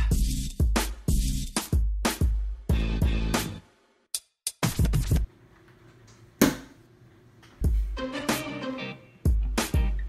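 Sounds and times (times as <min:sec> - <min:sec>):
loud background music: 0:00.0 - 0:03.6, 0:07.6 - 0:10.0.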